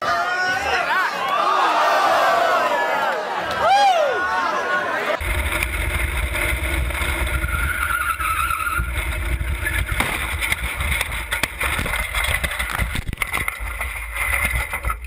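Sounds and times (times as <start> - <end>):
sharp knocks: 10.0 - 13.2.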